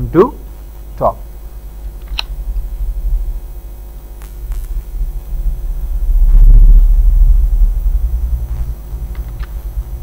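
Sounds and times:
loud deep rumble: 1.9s - 10.0s.

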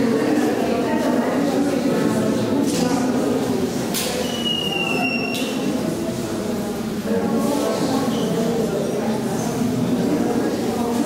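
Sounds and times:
murmur of crowd talking: 0.0s - 11.0s.

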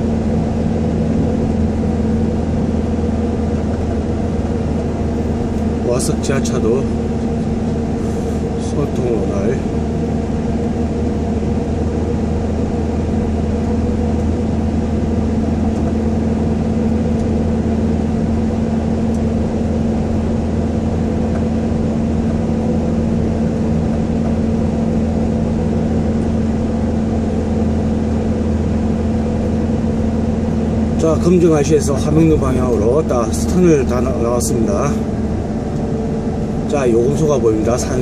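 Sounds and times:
engine and tyre drone: 0.0s - 38.0s.

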